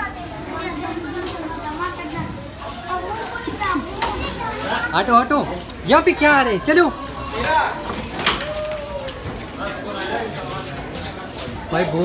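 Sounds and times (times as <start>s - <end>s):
children and people chattering: 0.0s - 12.0s.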